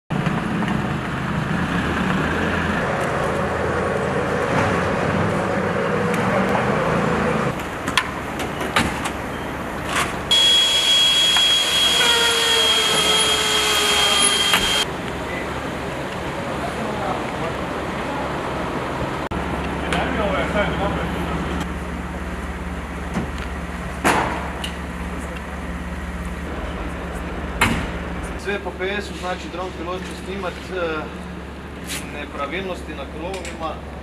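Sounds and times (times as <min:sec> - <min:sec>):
fire truck engines driving by: 0:00.1 - 0:34.0
rushing noise with high whine: 0:09.2 - 0:23.6.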